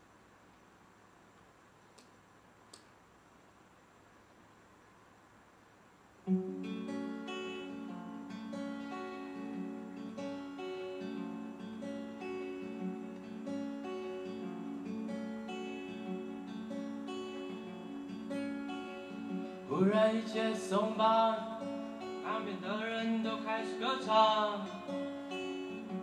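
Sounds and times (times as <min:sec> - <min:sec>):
acoustic guitar playing chords: 0:06.2 - 0:26.0.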